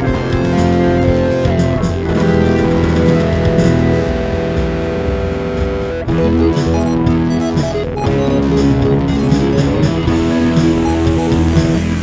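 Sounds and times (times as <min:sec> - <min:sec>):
rock band with electric guitar: 0:00.0 - 0:12.0.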